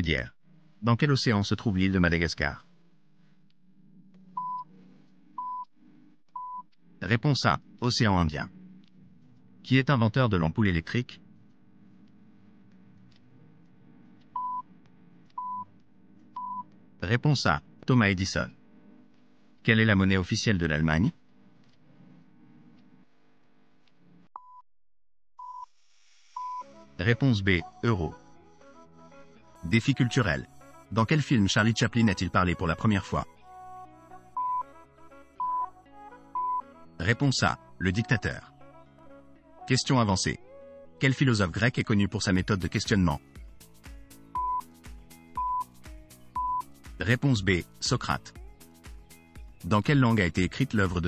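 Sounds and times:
faint low hum: 0:00.0 - 0:24.3
timer beeps: 0:04.4 - 0:04.7, 0:06.4 - 0:06.7, 0:14.4 - 0:14.6, 0:15.4 - 0:15.7, 0:16.4 - 0:16.6, 0:26.4 - 0:26.6, 0:34.4 - 0:34.7, 0:35.4 - 0:35.7, 0:44.4 - 0:44.7, 0:45.4 - 0:45.7, 0:46.4 - 0:46.7
countdown timer beeps: 0:34.4 - 0:34.7, 0:44.4 - 0:44.8, 0:45.4 - 0:45.8, 0:46.4 - 0:46.8.

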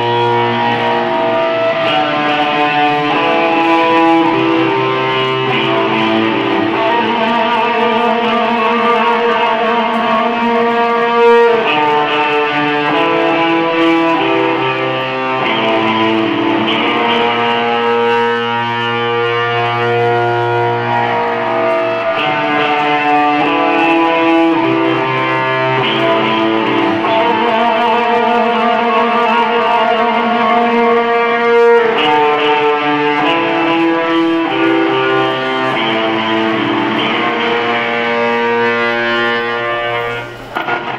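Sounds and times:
distorted electric guitars: 0:00.0 - 0:40.9.

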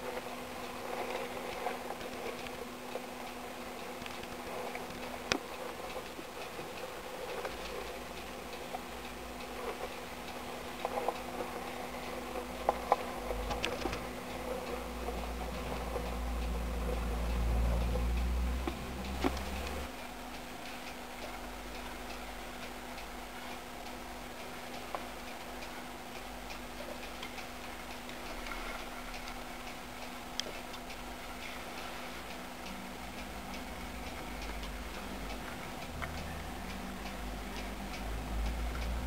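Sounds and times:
faint high ticks: 0:00.0 - 0:39.0
steady low hum: 0:00.0 - 0:39.0
mice claws clicking and scratching: 0:12.4 - 0:16.2.

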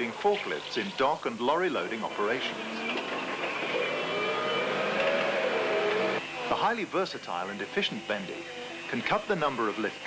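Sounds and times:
forklift motor whine: 0:02.0 - 0:06.8.

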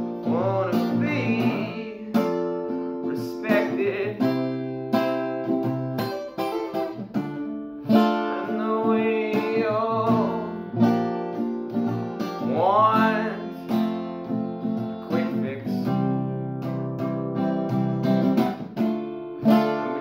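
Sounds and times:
man singing: 0:00.0 - 0:05.2, 0:07.9 - 0:11.0, 0:12.2 - 0:16.4
acoustic guitar strumming: 0:00.0 - 0:20.0.

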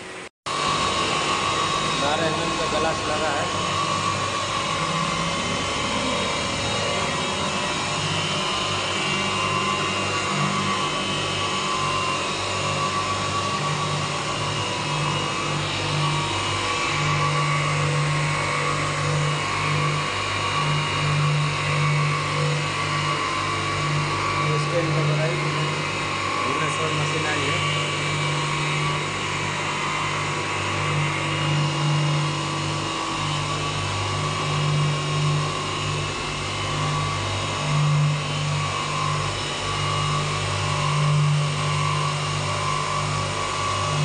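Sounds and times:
low hum cutting in and out: 0:00.0 - 0:29.2
glass grinding machine hum and whine: 0:00.0 - 0:44.0.

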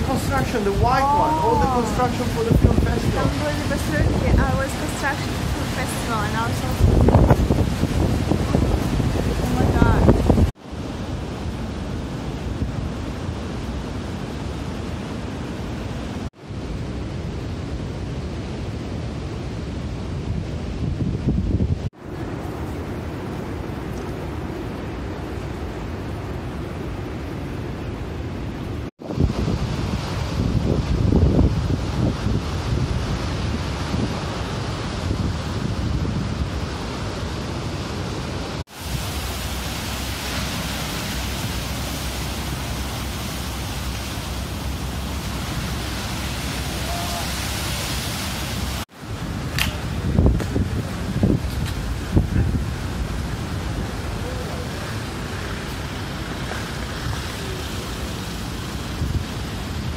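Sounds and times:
storm surf breaking: 0:00.0 - 0:59.9
strong gusty wind: 0:00.0 - 0:59.9
wind buffeting microphone: 0:00.0 - 0:59.9.

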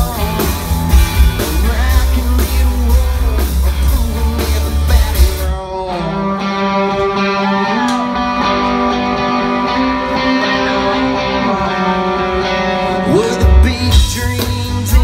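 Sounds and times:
country rock band playing: 0:00.0 - 0:15.0
electric guitar ringing: 0:00.0 - 0:15.0
male lead vocal: 0:00.0 - 0:15.0.

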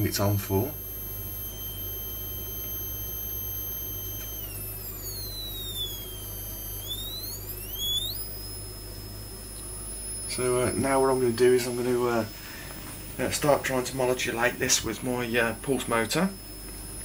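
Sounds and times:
high electronic tone: 0:00.0 - 0:17.0
low steady hum: 0:00.0 - 0:17.0.

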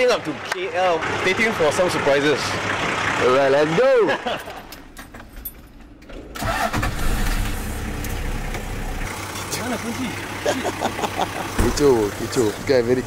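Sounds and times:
car engine starting and idling: 0:00.0 - 0:13.0.

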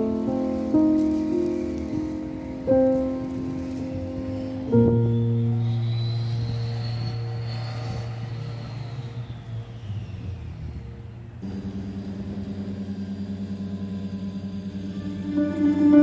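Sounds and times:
low sustained chord with gong: 0:00.0 - 0:10.0, 0:10.7 - 0:16.0
pulsing chord: 0:00.0 - 0:16.0.

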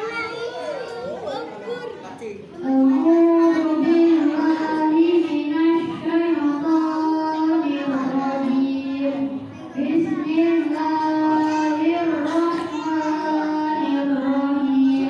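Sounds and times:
boy reciting melodically: 0:00.0 - 0:15.0.

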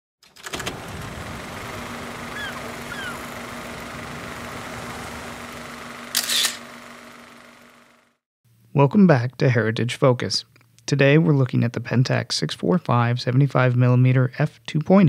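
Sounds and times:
camera shutter clicks: 0:06.1 - 0:06.6.

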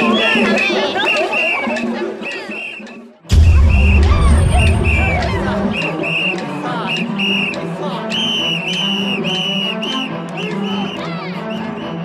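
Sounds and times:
crowd murmur: 0:00.0 - 0:12.0
shrill whistle blasts: 0:02.5 - 0:06.4, 0:07.0 - 0:11.0.

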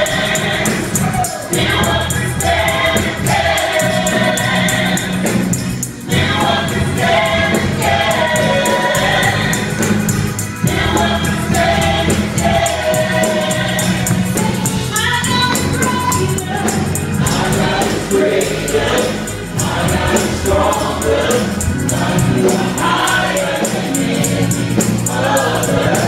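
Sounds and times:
accompaniment with quick ticking beat: 0:00.0 - 0:26.0
gospel group singing in harmony: 0:00.0 - 0:26.0.

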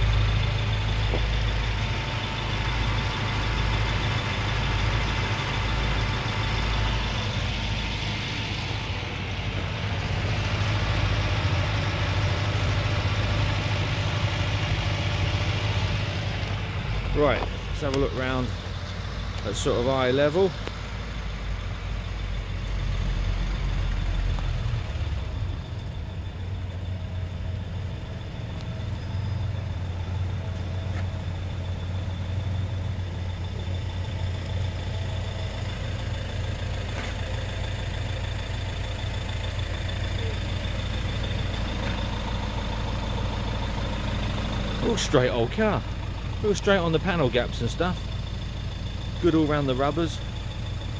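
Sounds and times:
car engine idling: 0:00.0 - 0:50.9.

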